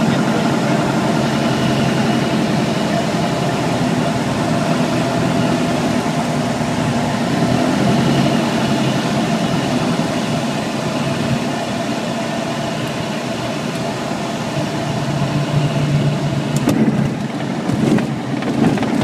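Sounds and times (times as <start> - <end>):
light aircraft engine and propeller: 0.0 - 19.0.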